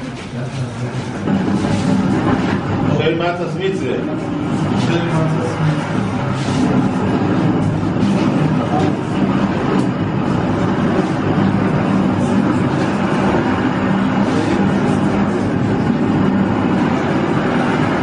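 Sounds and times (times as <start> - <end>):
crowd voices: 0.0 - 18.0.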